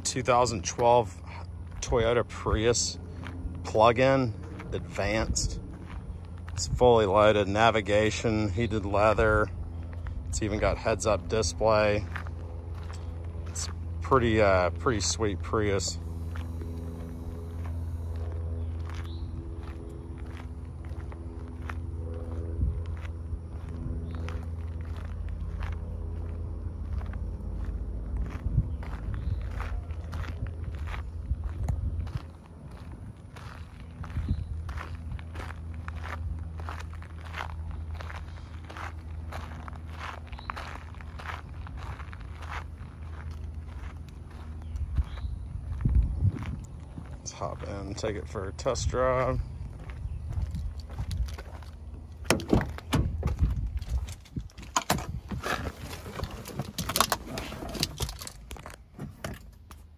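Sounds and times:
footsteps on asphalt: 0.0s - 59.9s
steady low hum: 0.0s - 59.9s.

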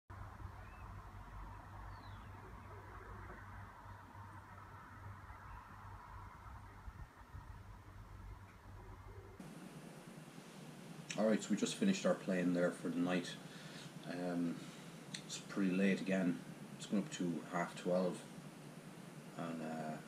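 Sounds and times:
low rumble: 0.1s - 9.4s
distant bird chirps: 0.1s - 11.1s, 13.4s - 20.0s
background hiss: 0.1s - 20.0s.

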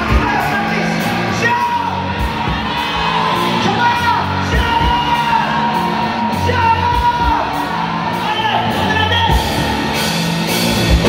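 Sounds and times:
rock band playing: 0.0s - 11.0s
steady drum beat: 0.0s - 11.0s.

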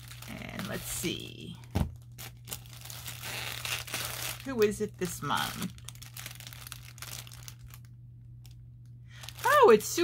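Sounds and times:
packaging crinkling: 0.0s - 10.0s.

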